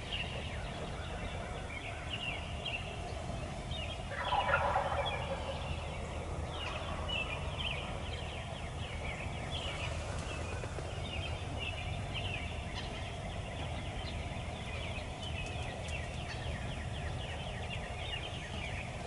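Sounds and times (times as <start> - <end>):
turkey gobbling: 4.1 - 5.8.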